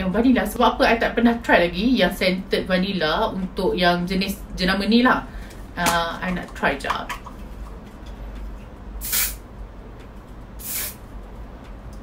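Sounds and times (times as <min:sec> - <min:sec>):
aerosol spray can hissing: 0:09.0 - 0:09.4, 0:10.6 - 0:11.0.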